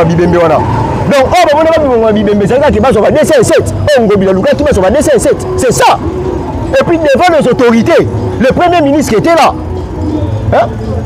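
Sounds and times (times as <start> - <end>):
man talking: 0.0 - 9.7, 10.4 - 11.0.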